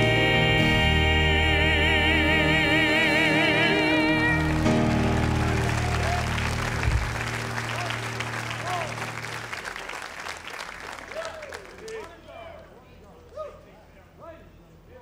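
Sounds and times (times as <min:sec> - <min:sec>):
gospel vocal group singing: 0:00.0 - 0:05.3
backing music chord: 0:00.0 - 0:09.5
audience applause: 0:04.1 - 0:12.6.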